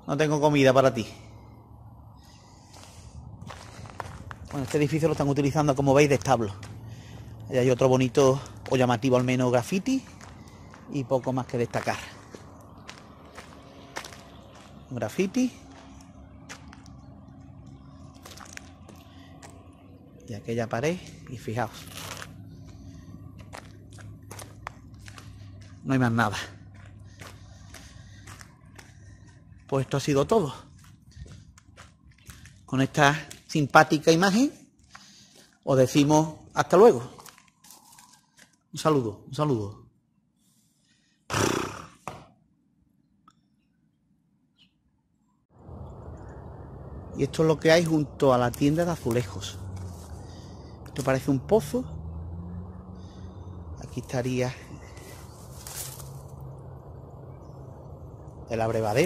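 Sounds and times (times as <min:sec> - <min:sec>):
footsteps on rubble: 0:02.8 - 0:05.3, 0:06.0 - 0:07.3, 0:08.1 - 0:14.9, 0:15.6 - 0:17.0, 0:17.8 - 0:19.7, 0:21.0 - 0:33.6, 0:37.1 - 0:38.6
sharp crunch: 0:21.7 - 0:25.8
horse blowing through nostrils: 0:41.3 - 0:42.1.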